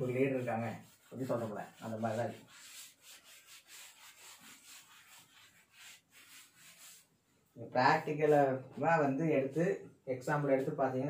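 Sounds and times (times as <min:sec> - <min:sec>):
cloth wiping chalkboard: 0:00.0 - 0:11.0.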